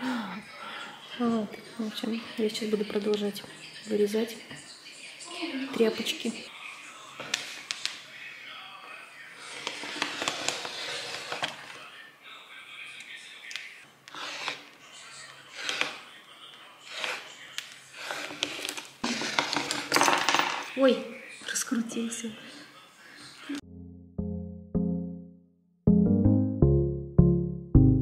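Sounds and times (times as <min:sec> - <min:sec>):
rotary cutter rolling through fabric: 0:14.1 - 0:14.7, 0:15.5 - 0:16.0, 0:16.8 - 0:19.4.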